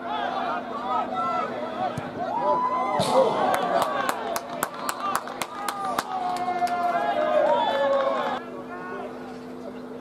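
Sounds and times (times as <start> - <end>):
voices shouting and calling out: 0.0 - 4.3.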